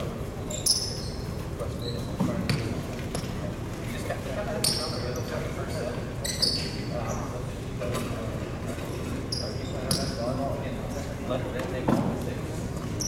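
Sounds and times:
voices chattering in echoing gym: 0:00.0 - 0:13.0
sneakers squeaking on gym floor: 0:00.4 - 0:03.4, 0:04.6 - 0:07.4, 0:09.3 - 0:10.3.

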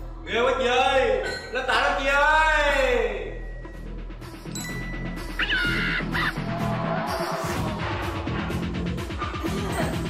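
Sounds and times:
background music with steady beat: 0:00.0 - 0:10.0
comic squawk sound effect: 0:05.4 - 0:06.4.

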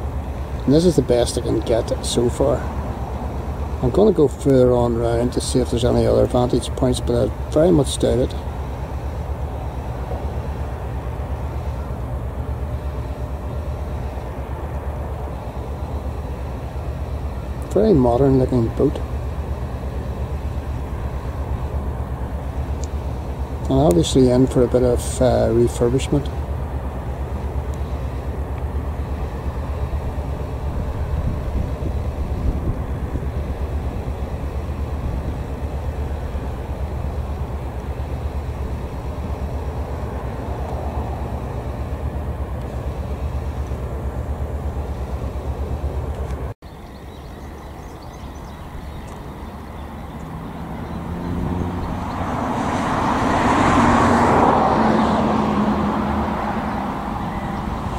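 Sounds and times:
road traffic rumble: 0:00.0 - 0:57.9
vehicle passing close by: 0:50.2 - 0:57.9.

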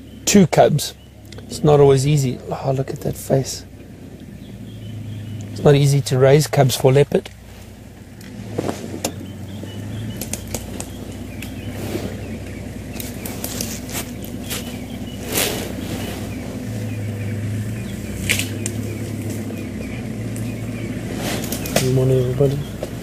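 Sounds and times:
vehicle engine idling: 0:00.0 - 0:23.0
clicks and crackles: 0:10.1 - 0:11.6, 0:18.2 - 0:19.5.

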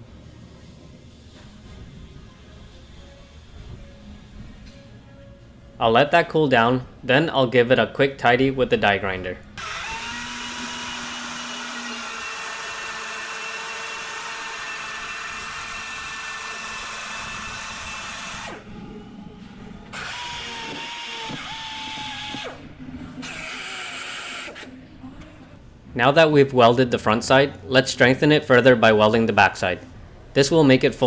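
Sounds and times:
pneumatic die grinder whining: 0:09.6 - 0:18.7, 0:19.9 - 0:22.6, 0:23.2 - 0:24.7.

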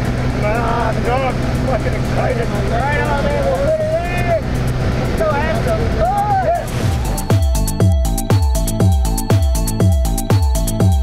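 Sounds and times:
airplane engine droning: 0:00.0 - 0:09.8
people talking: 0:00.4 - 0:04.4, 0:05.0 - 0:06.7.

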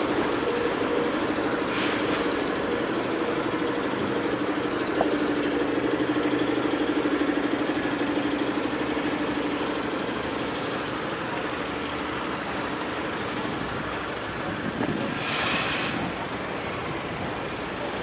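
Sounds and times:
cars idling in traffic: 0:00.0 - 0:18.0.

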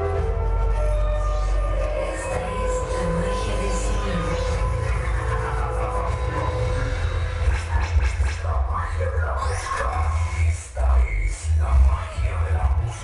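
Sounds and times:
bass-heavy dance music: 0:00.0 - 0:13.0
man speaking over music: 0:01.8 - 0:13.0.

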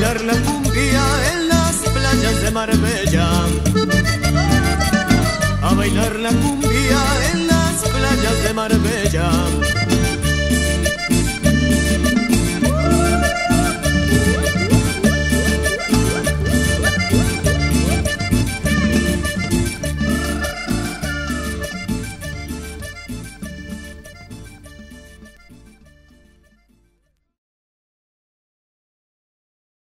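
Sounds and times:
bass and percussion beat: 0:00.0 - 0:26.3
accordion playing melody: 0:00.0 - 0:27.0.

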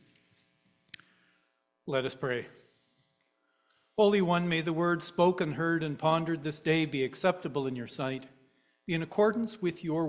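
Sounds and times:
man speaking: 0:01.9 - 0:02.7, 0:04.0 - 0:10.0.

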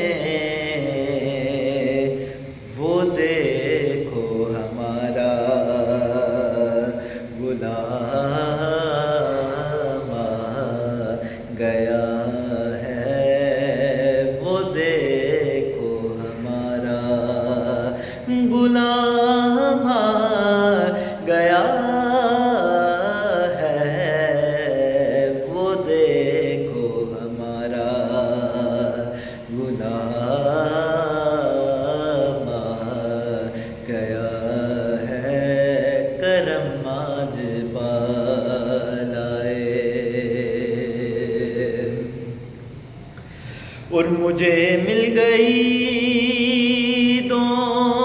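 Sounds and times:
man singing unaccompanied: 0:00.0 - 0:42.6, 0:43.8 - 0:48.0
singer breathing: 0:02.2 - 0:02.7, 0:06.9 - 0:07.4, 0:11.2 - 0:11.6, 0:17.9 - 0:18.3, 0:20.9 - 0:21.2, 0:29.0 - 0:29.5, 0:33.5 - 0:33.8, 0:42.9 - 0:44.0.

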